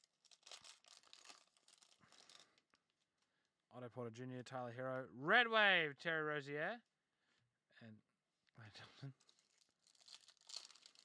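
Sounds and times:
foil pack crinkling: 0:00.0 - 0:02.6, 0:09.2 - 0:11.0.

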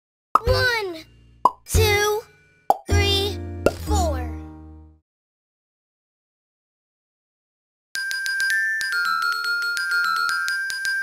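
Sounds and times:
child's voice: 0:00.4 - 0:01.1, 0:01.7 - 0:02.3, 0:02.9 - 0:04.5
cartoon pop effects: 0:01.4 - 0:01.6.

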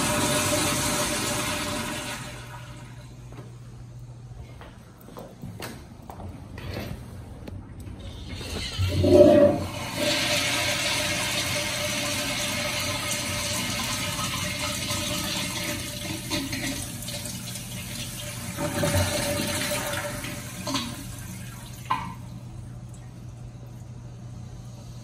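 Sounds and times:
toilet flush valve burst: 0:00.0 - 0:03.0, 0:08.1 - 0:22.2
water rushing into toilet bowl: 0:00.0 - 0:03.0, 0:08.1 - 0:22.2.

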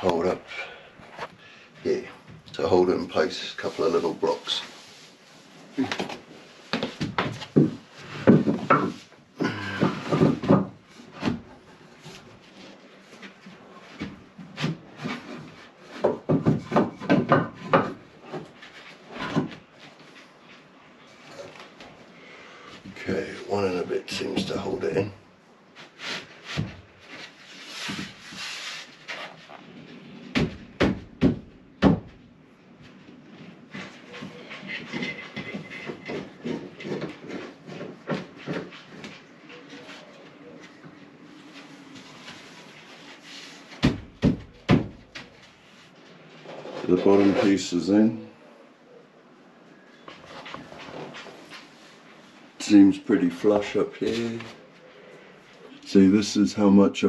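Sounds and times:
wood scraping on wood: 0:03.1 - 0:11.4, 0:33.1 - 0:40.3, 0:45.1 - 0:47.8.

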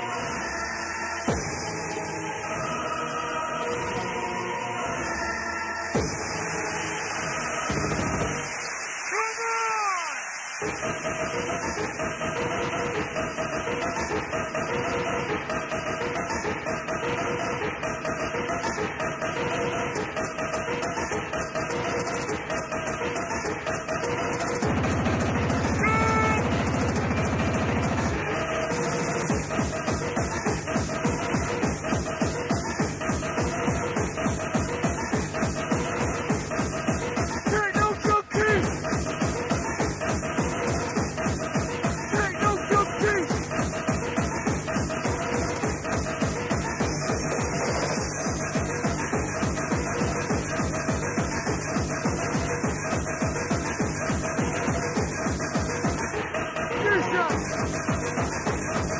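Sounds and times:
fast rave beat: 0:05.9 - 0:58.9.

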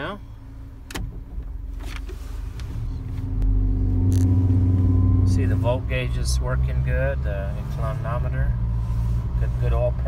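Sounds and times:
truck engine pulling away: 0:02.8 - 0:09.4.

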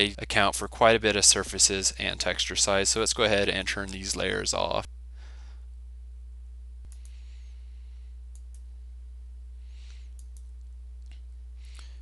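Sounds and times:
low hum: 0:00.0 - 0:12.0
computer mouse clicking: 0:10.2 - 0:10.5.

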